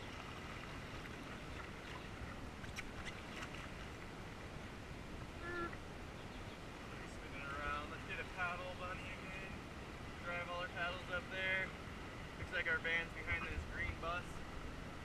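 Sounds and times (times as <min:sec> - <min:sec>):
fast river water rushing: 0:00.0 - 0:15.0.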